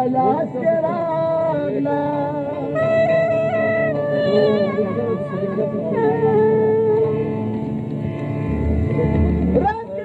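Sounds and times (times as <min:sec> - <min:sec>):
person singing folk song: 0:00.0 - 0:07.6
wavering instrumental accompaniment: 0:00.0 - 0:10.0.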